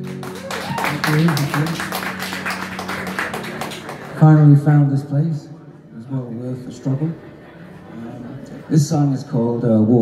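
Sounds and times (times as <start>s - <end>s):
audience clapping: 0.0s - 4.6s.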